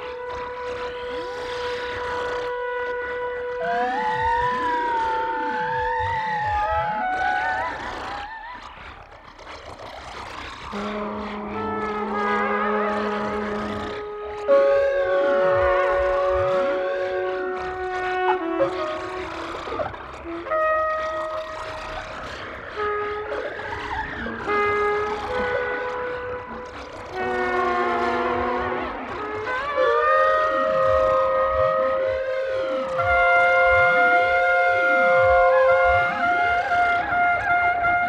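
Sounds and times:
brass instruments holding notes: 0.0 - 9.0, 10.4 - 38.0
siren-like electronic glides: 0.0 - 37.9
slow sweeping tones: 0.0 - 38.0.

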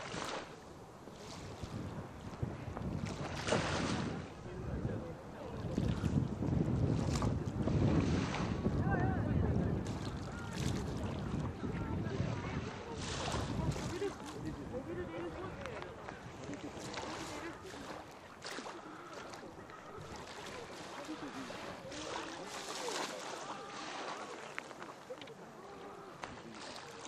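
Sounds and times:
wind buffeting microphone: 0.0 - 22.8
sea waves washing onto beach: 0.0 - 27.0.

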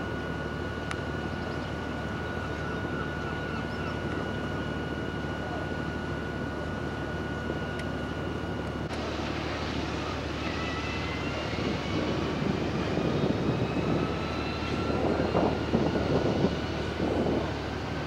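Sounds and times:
high whine: 0.0 - 18.0
ship machinery drone: 0.0 - 18.0.

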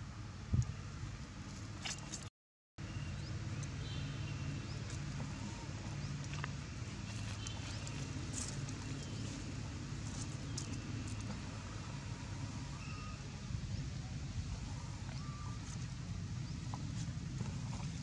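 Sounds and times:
steady low hum: 0.0 - 18.0
faint bird-like chirps: 12.7 - 13.5, 14.6 - 15.9.

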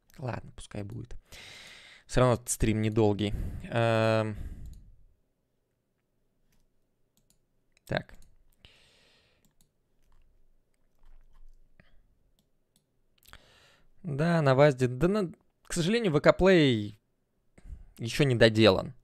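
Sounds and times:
person speaking: 0.0 - 1.3, 2.1 - 4.8, 7.8 - 8.4
computer mouse clicking: 4.6 - 4.8, 6.5 - 7.4, 9.4 - 11.6.

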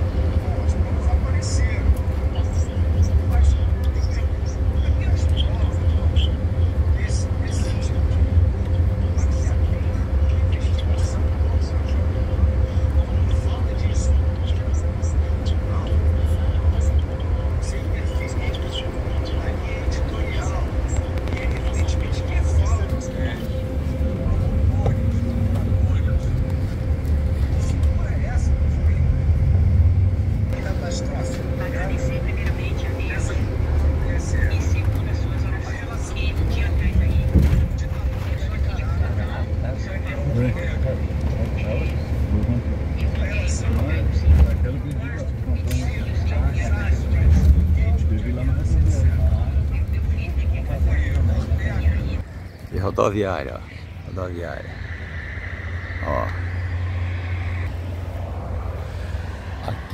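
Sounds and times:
road and engine rumble: 0.0 - 59.9.

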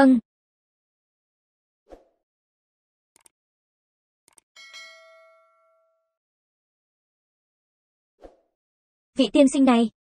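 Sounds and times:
metallic bell-like ding: 4.6 - 6.2.

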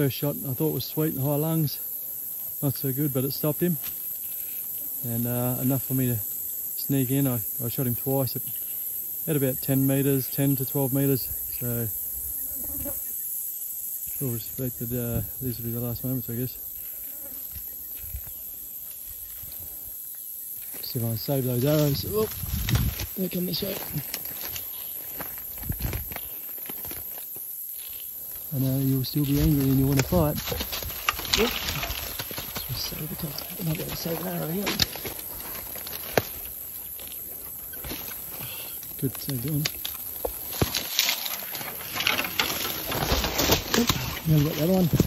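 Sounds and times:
insects buzzing: 0.0 - 45.0
brush rustling: 20.6 - 45.0.

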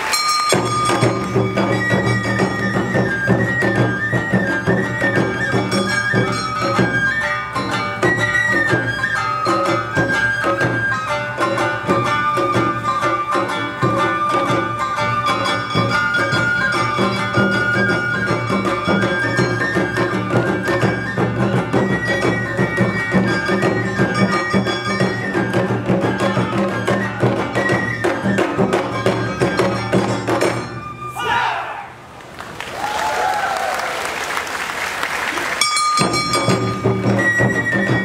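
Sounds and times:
brisk drum rhythm: 0.0 - 30.9, 35.6 - 38.0
high flute melody: 0.0 - 31.7, 35.6 - 38.0
crowd noise: 0.0 - 38.0
small gong: 35.6 - 38.0.

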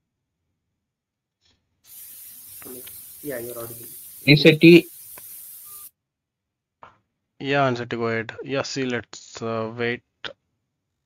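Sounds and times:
microphone hiss: 1.9 - 5.9.

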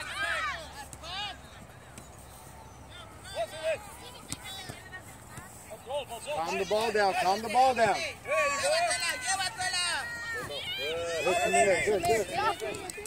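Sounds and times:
outdoor background noise: 0.0 - 13.0
distant shouts of players: 7.1 - 13.0.

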